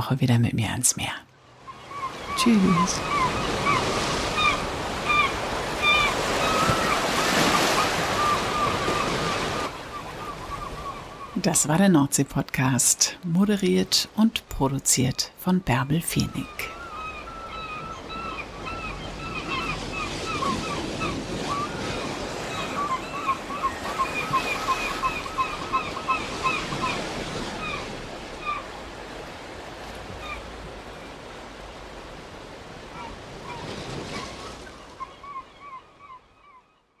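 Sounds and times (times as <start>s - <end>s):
birds calling: 1.6s - 11.4s, 15.7s - 37.0s.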